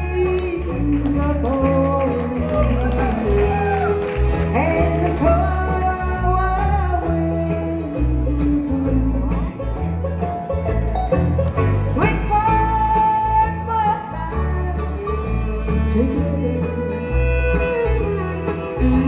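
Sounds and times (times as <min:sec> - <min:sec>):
bass line: 0:00.0 - 0:19.0
fiddle playing lead: 0:00.0 - 0:19.0.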